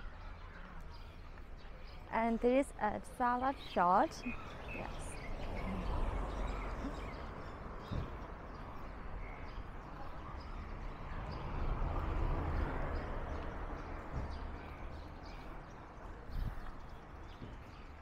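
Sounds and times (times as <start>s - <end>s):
traffic and street noise: 0.0s - 18.0s.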